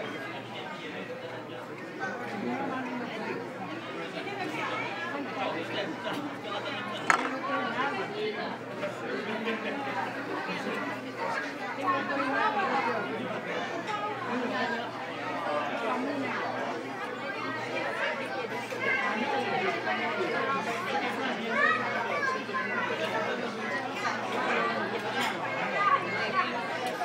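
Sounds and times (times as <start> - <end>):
chatter of diners' voices: 0.0 - 27.0.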